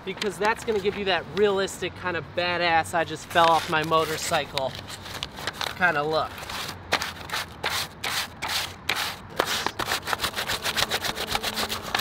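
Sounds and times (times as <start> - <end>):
sandpaper rubbing leather: 3.4 - 4.4, 6.3 - 12.0.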